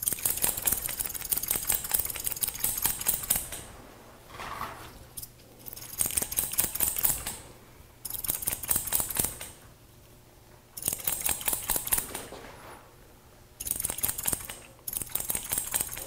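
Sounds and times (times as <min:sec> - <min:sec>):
scissors snipping hair: 0:00.0 - 0:03.5, 0:05.6 - 0:07.4, 0:08.1 - 0:09.6, 0:10.8 - 0:12.1, 0:13.6 - 0:16.0.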